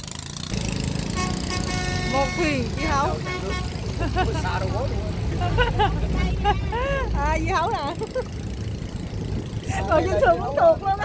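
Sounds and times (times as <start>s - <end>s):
boat engine rumble: 1.0s - 11.0s.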